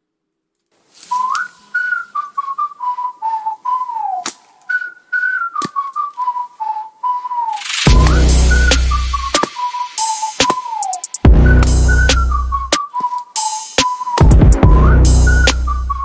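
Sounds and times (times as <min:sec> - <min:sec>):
whistled melody: 0:01.0 - 0:16.0
loud music with heavy beat: 0:07.9 - 0:12.2, 0:13.6 - 0:15.6.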